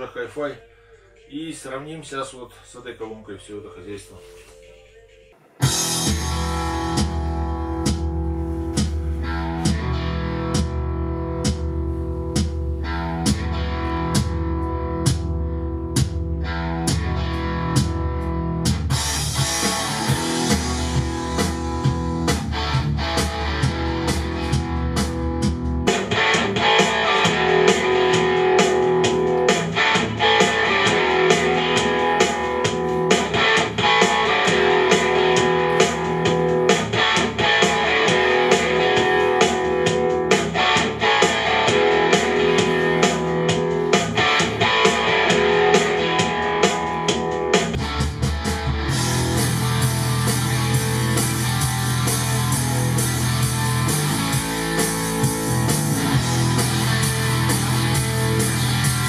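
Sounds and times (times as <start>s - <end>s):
rock instrumental: 5.6s - 59.0s.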